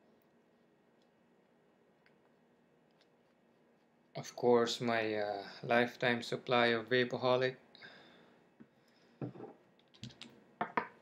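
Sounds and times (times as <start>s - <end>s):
glass bottle set down on table: 9.2s - 9.6s, 10.6s - 11.0s.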